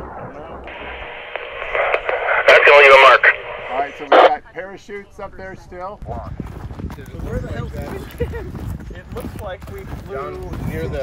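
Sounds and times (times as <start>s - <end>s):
faint voices: 0.1s - 4.5s
wind on microphone: 5.3s - 11.0s
footsteps crunching on dry crust: 6.2s - 11.0s.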